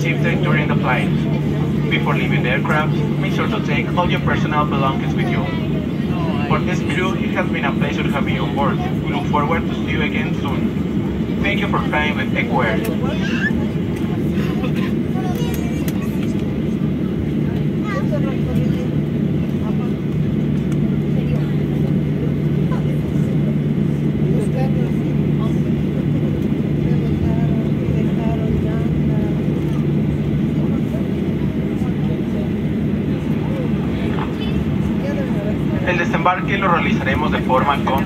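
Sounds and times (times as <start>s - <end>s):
faint cabin voices: 0.0s - 38.0s
jet engines droning at taxi power: 0.0s - 38.0s.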